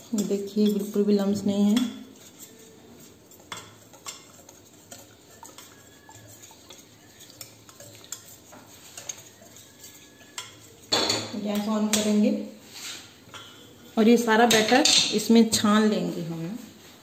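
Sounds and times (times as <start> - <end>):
whisk wires ticking on bowl: 0.0 - 12.3
whisk swishing batter: 0.0 - 15.9.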